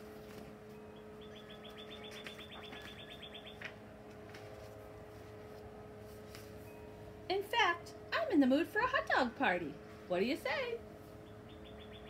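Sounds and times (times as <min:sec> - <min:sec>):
faint steady hum: 0:00.0 - 0:12.0
songbird trilling: 0:01.2 - 0:03.6, 0:11.2 - 0:12.0.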